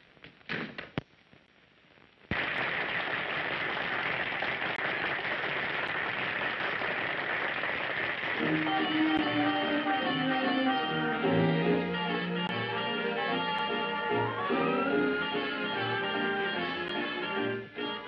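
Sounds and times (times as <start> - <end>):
dance band playing swing music: 8.4 - 18.0.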